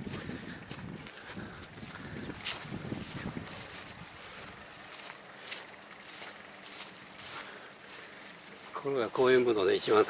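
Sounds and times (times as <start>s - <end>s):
footsteps through grass: 0.0s - 10.0s.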